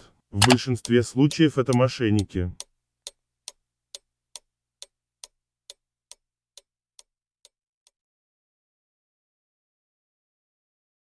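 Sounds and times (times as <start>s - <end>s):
sharp ticking: 0.4s - 7.6s.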